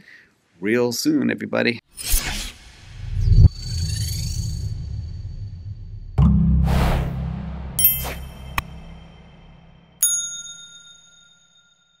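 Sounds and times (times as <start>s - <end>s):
notification bell ding: 7.2s - 9.1s.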